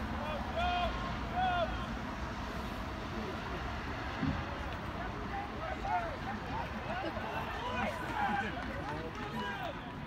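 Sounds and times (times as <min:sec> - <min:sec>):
voices calling out: 0:04.8 - 0:10.0.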